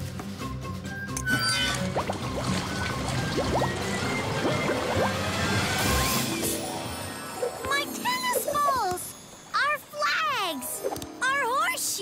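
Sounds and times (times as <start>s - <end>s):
cartoon background music: 0.3s - 12.0s
water gurgling and rushing: 1.3s - 7.7s.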